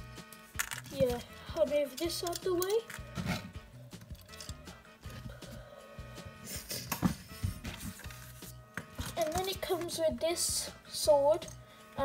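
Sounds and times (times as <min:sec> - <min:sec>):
background music with bass line: 0:00.0 - 0:12.0
plastic pieces clicking: 0:00.6 - 0:01.3, 0:01.9 - 0:03.0.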